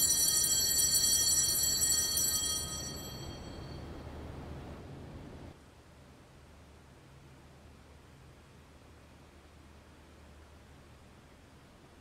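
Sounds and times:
altar bell ringing: 0.0 - 4.0.

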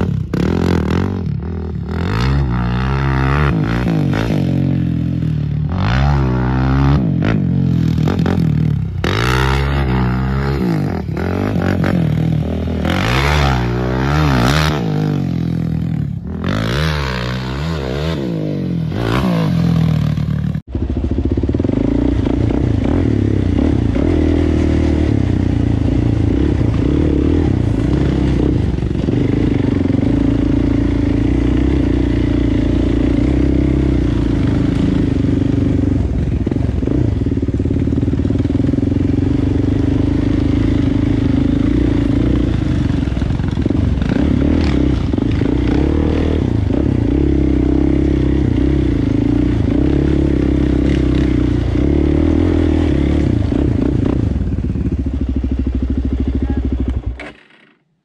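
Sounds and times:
atv engine revving: 0.0 - 57.6.

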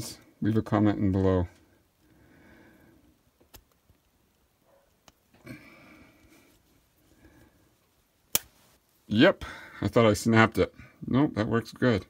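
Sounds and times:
breaths: 1.5 - 3.2, 5.3 - 7.9, 9.4 - 9.8, 10.7 - 11.0
soft handling sounds: 3.3 - 9.2.

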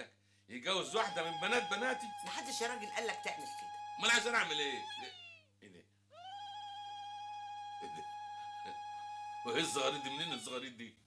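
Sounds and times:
woman ululating: 0.9 - 5.5, 6.1 - 10.6.

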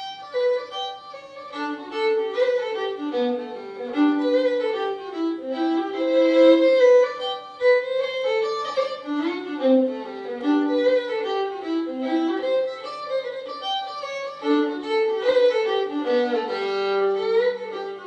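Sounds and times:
fiddle playing a folk tune: 0.0 - 18.0.

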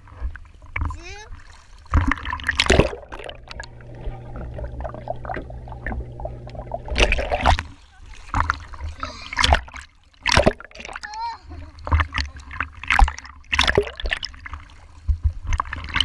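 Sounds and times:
water splashing and sloshing: 0.0 - 16.0
muffled underwater sound: 2.7 - 13.2.

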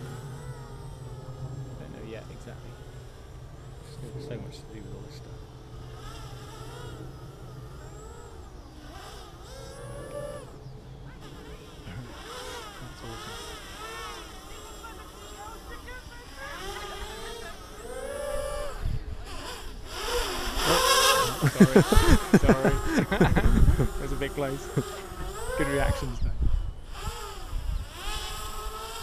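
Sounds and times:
quadcopter motors whining: 0.0 - 29.0.

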